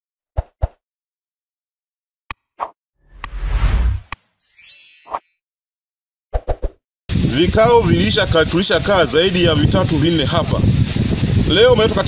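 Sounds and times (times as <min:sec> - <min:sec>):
whoosh with deep rumble: 0:03.1 - 0:04.1.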